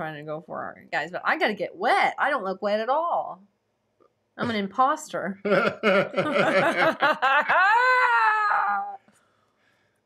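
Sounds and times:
person laughing: 5.5s - 8.8s.

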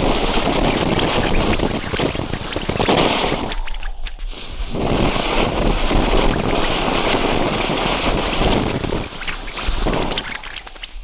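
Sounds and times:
fountain firework hissing: 0.0s - 11.0s.

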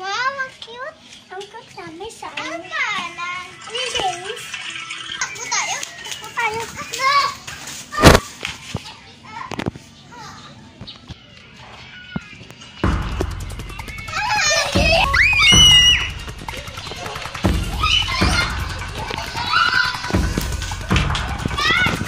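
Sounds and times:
children talking and squealing: 0.0s - 22.0s
music: 12.6s - 22.0s
sharp knock: 12.8s - 19.5s.

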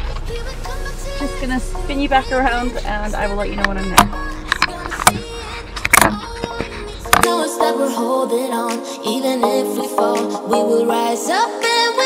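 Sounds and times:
car cabin rumble: 0.0s - 7.2s
plastic knocks from camera mount: 4.0s - 5.2s, 5.9s - 7.3s.

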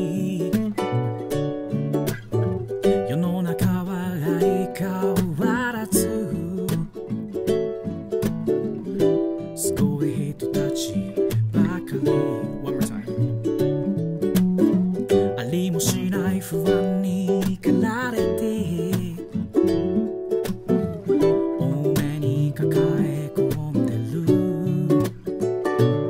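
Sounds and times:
man singing: 0.0s - 1.3s, 2.9s - 7.3s, 9.6s - 13.3s, 15.1s - 19.6s, 20.7s - 25.4s
ukulele chords: 0.0s - 26.0s.

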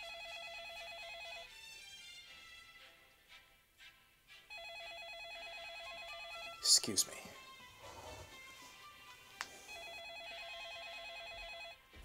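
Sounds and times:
electronic telephone ringer trilling: 9.7s - 11.8s.

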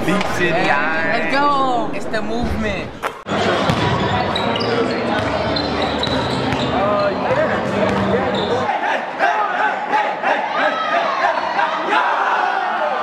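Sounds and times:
many voices talking: 0.0s - 13.0s
basketballs bouncing on gym floor: 3.7s - 4.0s, 7.3s - 8.2s.

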